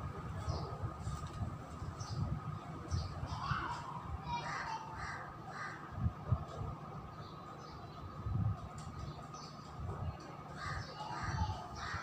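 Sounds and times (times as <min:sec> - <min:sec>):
bird cawing: 0:03.5 - 0:05.9, 0:10.6 - 0:12.0.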